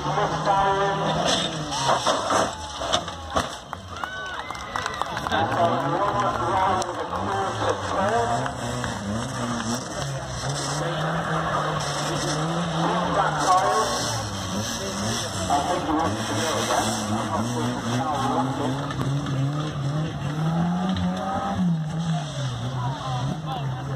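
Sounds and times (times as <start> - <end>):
car engine revving: 0.0 - 3.9, 5.2 - 23.9
car crashing off a ramp: 1.1 - 3.7
background voices: 5.2 - 23.9.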